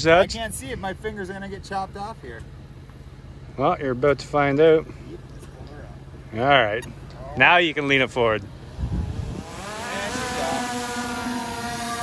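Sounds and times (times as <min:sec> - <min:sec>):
drone propellers whining: 0:08.5 - 0:12.0.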